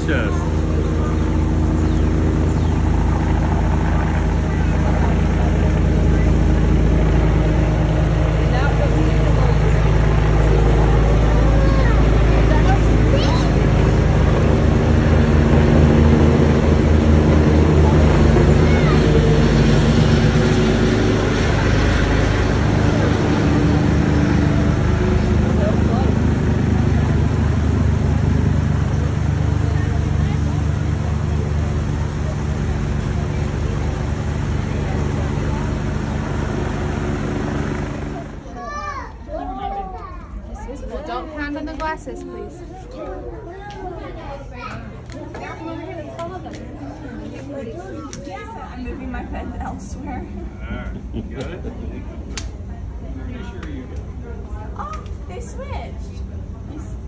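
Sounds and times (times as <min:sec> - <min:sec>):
faint voices: 0:00.0 - 0:57.0
loud low motor hum: 0:00.0 - 0:57.0.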